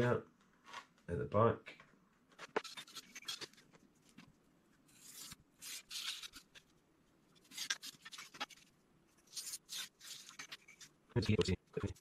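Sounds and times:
craft knife cutting foam: 0:04.9 - 0:06.7.

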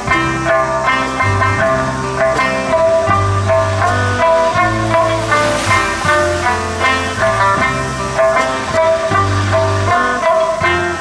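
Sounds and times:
bass line: 0:00.0 - 0:11.0
drums: 0:00.0 - 0:11.0
electric guitar: 0:00.0 - 0:11.0
strummed acoustic guitar: 0:00.0 - 0:11.0.

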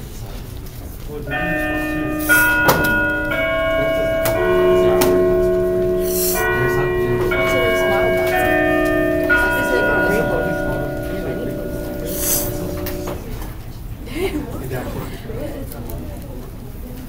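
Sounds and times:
bell-like chime melody: 0:01.3 - 0:13.4
sharp knocks: 0:02.4 - 0:09.4.

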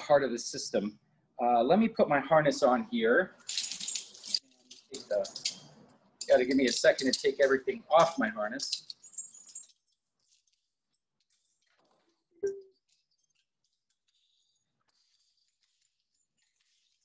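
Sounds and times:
carabiners clinking: 0:03.4 - 0:10.4.

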